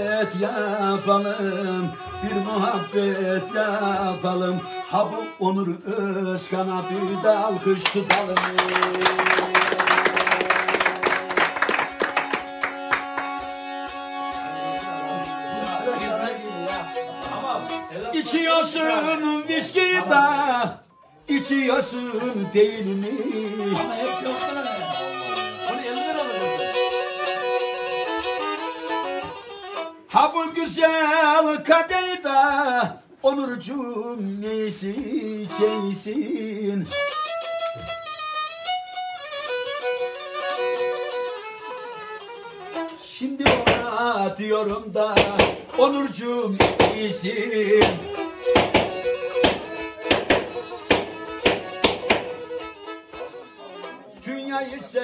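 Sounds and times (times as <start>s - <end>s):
bowed lyra folk melody: 0.0s - 33.2s, 33.8s - 55.0s
sharp knocks keeping time: 42.8s - 44.0s, 45.1s - 45.8s, 46.6s - 53.0s.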